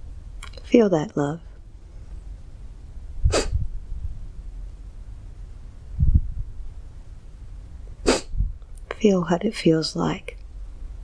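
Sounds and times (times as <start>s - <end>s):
sharp sniffs: 3.3s - 3.6s, 8.0s - 8.4s.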